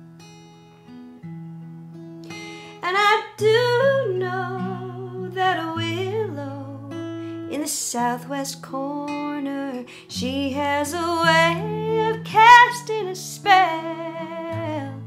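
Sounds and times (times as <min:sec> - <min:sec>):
woman singing: 0:02.8 - 0:15.0.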